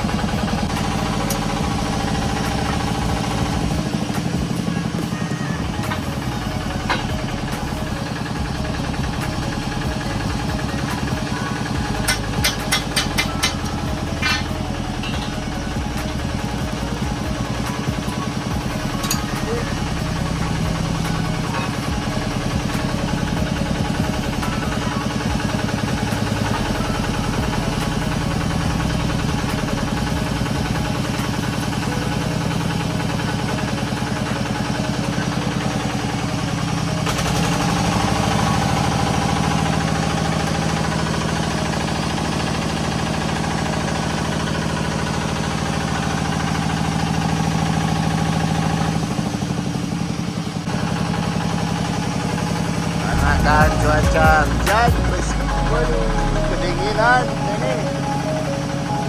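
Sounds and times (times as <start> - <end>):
drilling rig engine running: 0.0 - 59.0.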